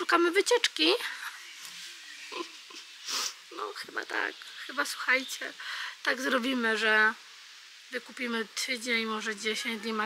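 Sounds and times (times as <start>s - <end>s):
faint outdoor air hiss: 0.0s - 10.0s.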